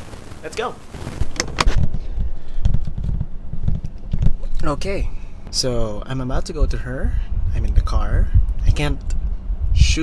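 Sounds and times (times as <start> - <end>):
muffled thumps and rubbing on microphone: 0.0 - 4.7.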